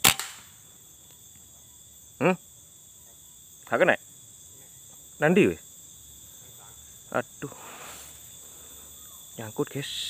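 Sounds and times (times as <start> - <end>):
air rifle shot: 0.0 - 0.5
high insect drone: 0.0 - 10.0.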